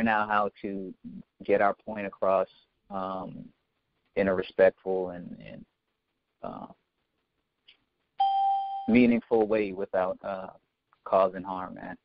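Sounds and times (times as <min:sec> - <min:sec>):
man speaking: 0:00.0 - 0:03.6, 0:04.2 - 0:05.7, 0:06.4 - 0:06.8, 0:08.9 - 0:12.0
electronic tone: 0:08.2 - 0:09.1.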